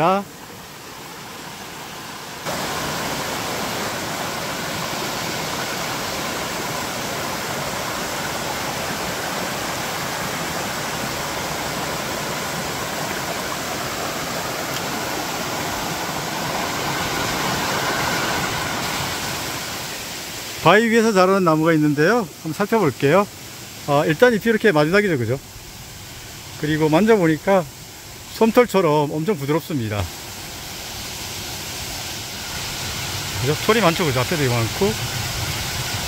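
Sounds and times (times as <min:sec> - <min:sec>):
stream rushing over rocky cascade: 0:00.0 - 0:36.0.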